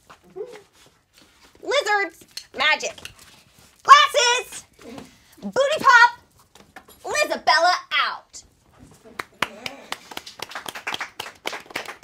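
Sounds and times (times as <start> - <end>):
people clapping: 9.0 - 12.0.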